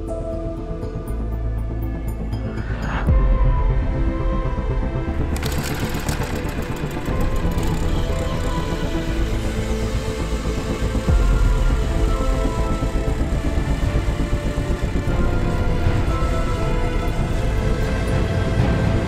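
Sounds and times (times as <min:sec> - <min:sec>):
background music: 0:00.0 - 0:19.0
ice auger engine drilling: 0:05.2 - 0:19.0.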